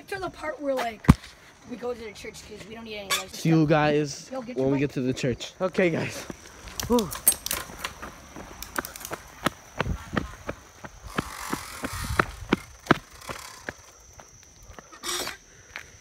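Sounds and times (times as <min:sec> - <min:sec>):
bicycle rattling and knocking: 0:06.8 - 0:09.2, 0:11.1 - 0:13.9
wind buffeting microphone: 0:09.2 - 0:13.6.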